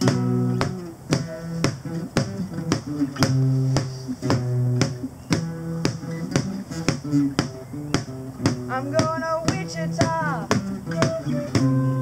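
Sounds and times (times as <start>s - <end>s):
stick tapping on plastic tote: 0.0s - 11.8s
acoustic guitars playing: 0.0s - 12.0s.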